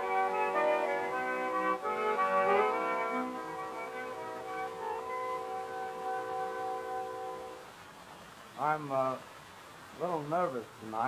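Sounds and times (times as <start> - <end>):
small orchestra playing: 0.0 - 7.6
disc hiss: 0.0 - 11.0.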